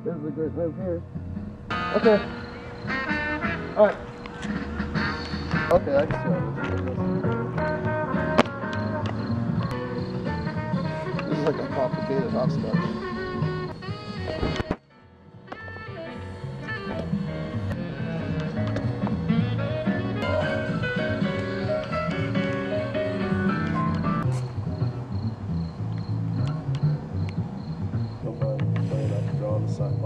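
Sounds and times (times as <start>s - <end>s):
music with bass line: 0.0s - 29.9s.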